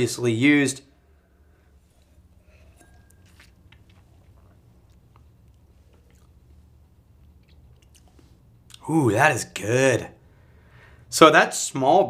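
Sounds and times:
low room hum: 0:00.0 - 0:12.0
person sipping and tasting: 0:01.1 - 0:08.8.

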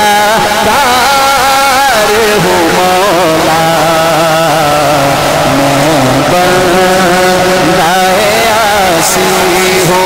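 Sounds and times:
low drone: 0:00.0 - 0:10.0
man singing into a microphone: 0:00.0 - 0:10.0.

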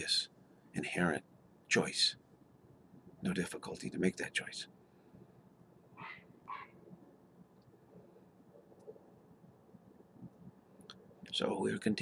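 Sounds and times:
faint dog barking: 0:06.0 - 0:06.8.

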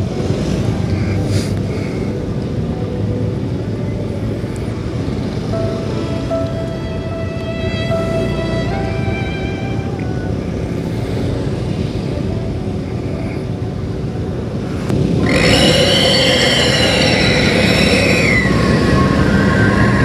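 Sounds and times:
motorcycle and car engines idling: 0:00.0 - 0:20.0
road noise: 0:00.0 - 0:20.0
tone with rising and falling pitch: 0:15.2 - 0:20.0.

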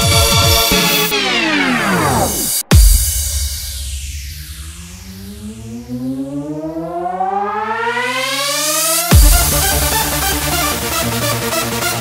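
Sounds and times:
siren-like synth sweep climbing: 0:00.7 - 0:11.2.

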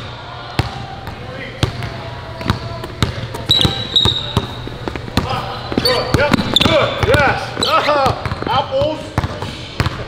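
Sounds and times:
basketball bouncing on wood floor: 0:00.6 - 0:10.0
sneaker squeaks: 0:01.1 - 0:10.0.

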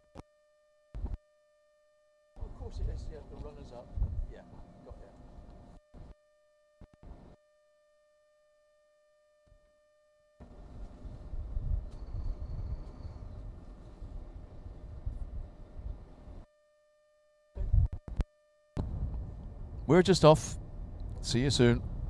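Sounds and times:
thin whine: 0:00.0 - 0:22.0
wind buffeting microphone: 0:03.9 - 0:04.4, 0:10.5 - 0:16.3, 0:18.8 - 0:22.0.

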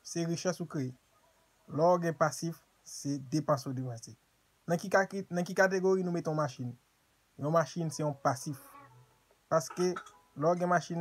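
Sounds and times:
man repeating a word rapidly: 0:09.5 - 0:11.0.

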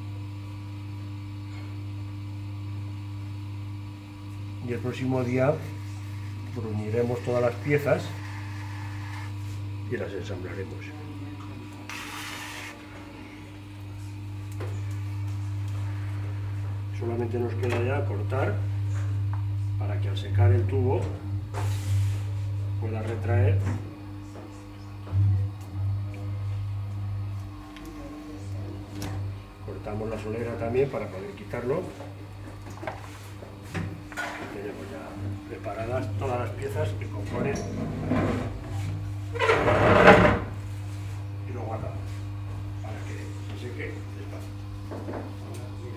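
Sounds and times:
potter's wheel humming: 0:00.0 - 0:45.9.

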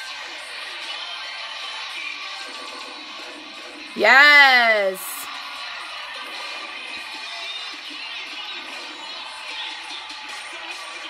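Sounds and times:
cheer routine music mix: 0:04.0 - 0:05.2
crowd cheering: 0:04.0 - 0:05.2
people talking: 0:04.0 - 0:05.2.

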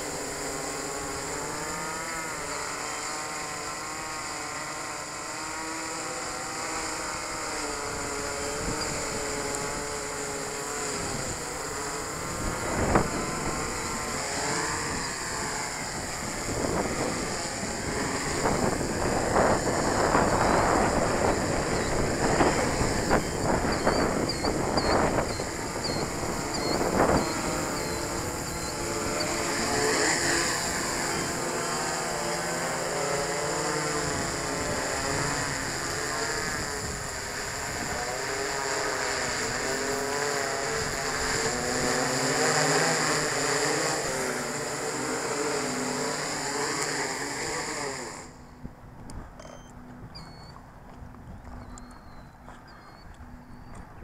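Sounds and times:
drone rotors buzzing: 0:00.0 - 0:54.0
wind buffeting microphone: 0:07.7 - 0:32.1.

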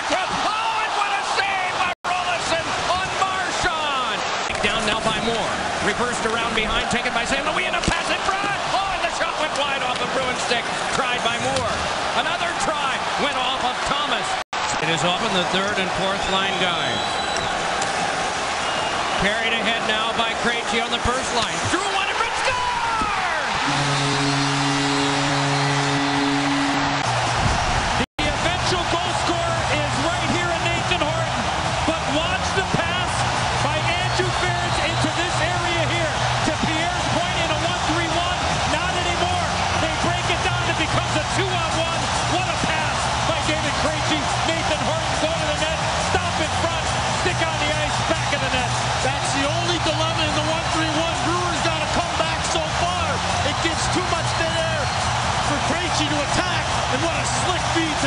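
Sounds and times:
crowd cheering: 0:00.0 - 0:58.0
goal horn blaring: 0:23.5 - 0:27.2.

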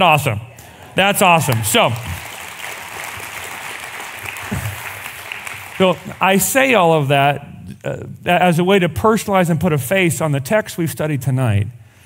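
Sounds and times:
congregation applauding: 0:00.7 - 0:06.8.

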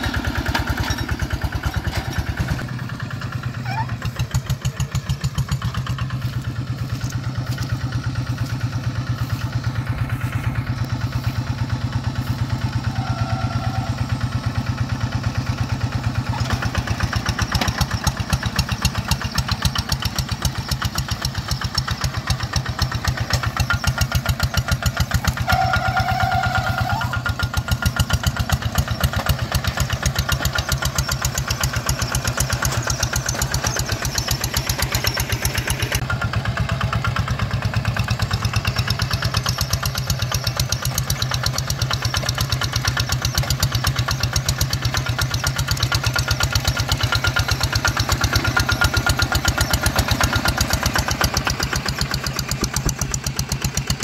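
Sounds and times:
diesel engine chugging: 0:00.0 - 0:54.0.

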